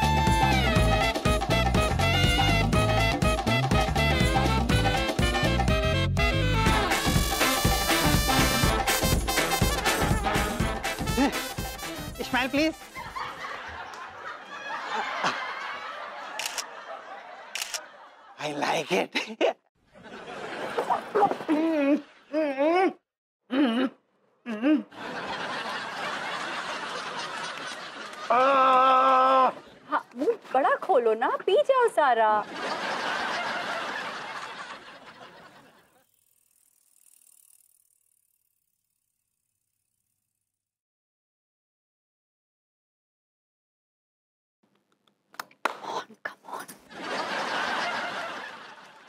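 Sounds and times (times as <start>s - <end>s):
laughter: 12.9s - 22.8s, 24.8s - 29.8s, 32.4s - 36.0s, 46.9s - 49.0s
camera shutter clicks: 16.4s - 16.7s, 17.6s - 17.9s.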